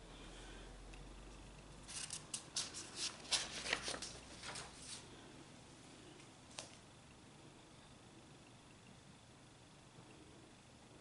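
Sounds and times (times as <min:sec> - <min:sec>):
paper rustling: 0:01.8 - 0:05.1.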